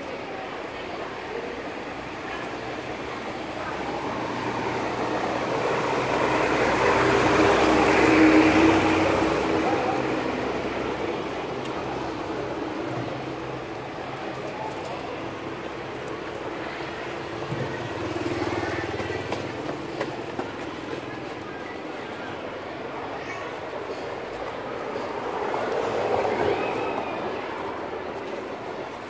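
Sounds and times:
traffic noise: 0.0s - 29.0s
truck engine passing: 3.8s - 12.3s.

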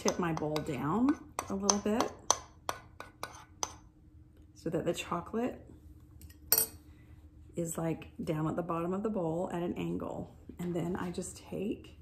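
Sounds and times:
metal spoon clinking in ceramic bowl: 6.2s - 6.8s.

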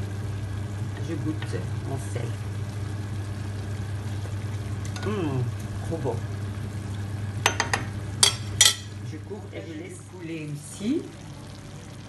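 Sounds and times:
steady low hum: 0.0s - 12.0s
utensils clinking against dishes: 7.5s - 8.9s.

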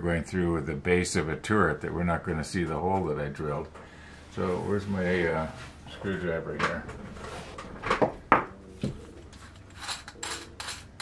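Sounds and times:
metal tools clinking: 9.5s - 11.0s.

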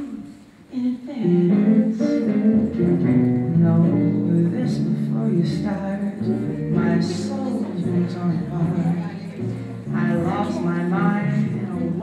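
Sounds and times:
plucked guitar: 1.2s - 12.0s.

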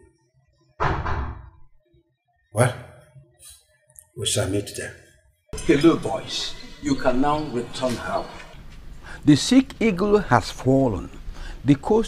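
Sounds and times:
loud thump: 0.8s - 1.7s
faint background music: 2.5s - 12.0s.

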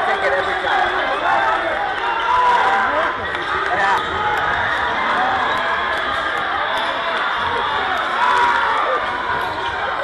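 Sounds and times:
crowd voices and shouts: 0.0s - 10.0s.

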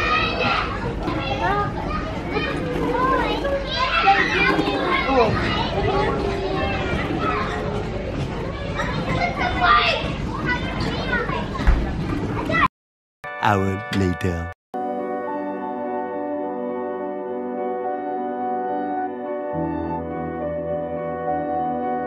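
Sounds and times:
children chattering and calling out: 0.0s - 11.7s.

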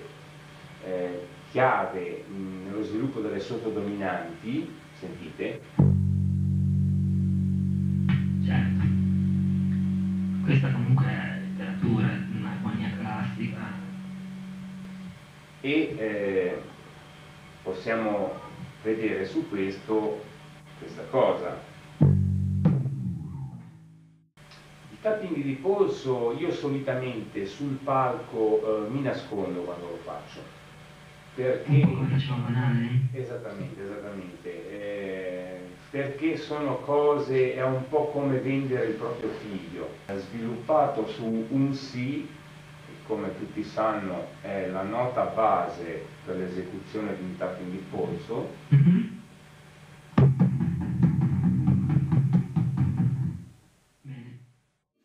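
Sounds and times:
faint low tone humming: 0.0s - 35.9s
bass guitar note ringing: 5.8s - 16.0s, 22.0s - 24.2s, 50.2s - 53.5s.

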